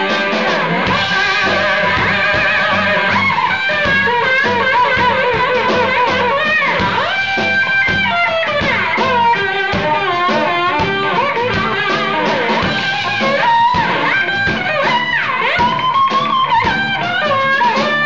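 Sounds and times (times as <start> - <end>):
band accompaniment: 0.0 - 18.0
electric guitar lead with bent notes: 0.0 - 18.0
steady drum beat: 0.0 - 18.0.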